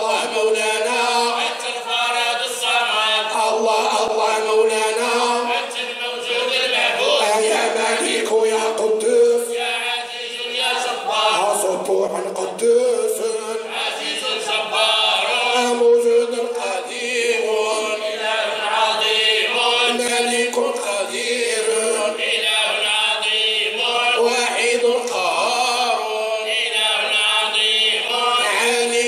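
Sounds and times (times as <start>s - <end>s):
men chanting: 0.0s - 29.0s.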